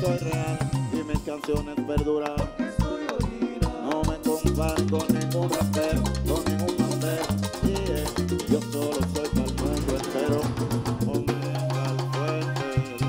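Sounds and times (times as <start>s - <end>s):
horn lines: 0.0s - 3.0s
bass: 0.0s - 13.0s
drums and scraper driving beat: 0.0s - 13.0s
merengue band playing: 0.0s - 13.0s.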